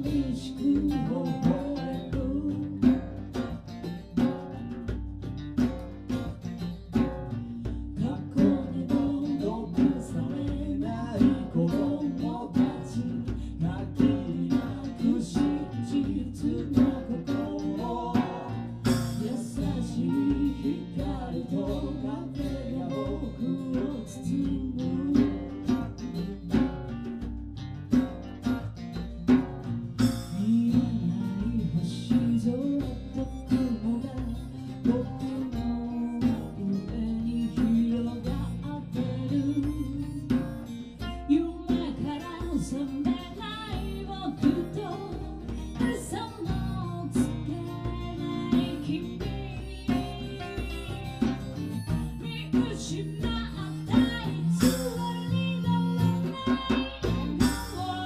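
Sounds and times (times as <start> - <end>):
woman singing into a microphone: 0.0 - 3.8, 7.3 - 27.0, 30.0 - 58.0
acoustic guitars strummed: 0.0 - 58.0.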